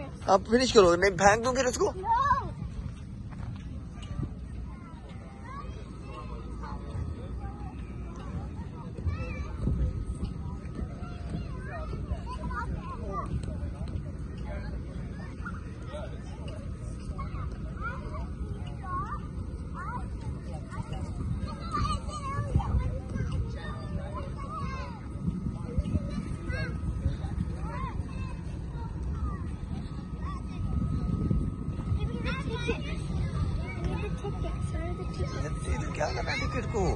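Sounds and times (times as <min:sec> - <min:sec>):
distant voices chattering: 0:00.0 - 0:36.9
steady low rumble: 0:00.0 - 0:36.9.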